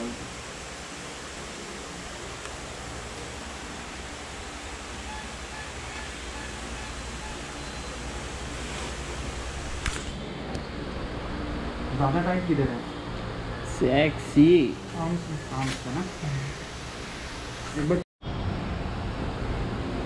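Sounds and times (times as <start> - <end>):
steady background hiss: 0.0 - 18.0.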